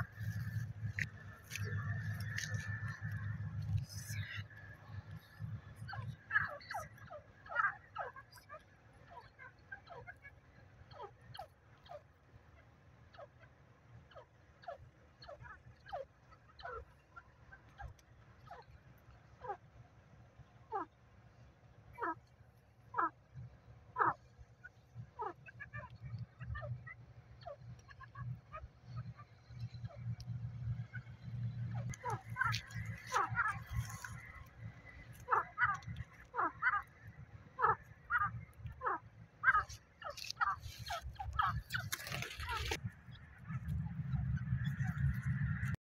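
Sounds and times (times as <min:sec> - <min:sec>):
low steady hum: 0:00.0 - 0:08.2.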